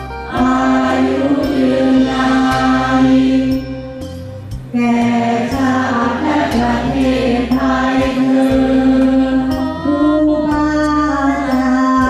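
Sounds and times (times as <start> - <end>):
percussion strokes: 0.0 - 10.7
crowd singing in unison: 0.1 - 10.5.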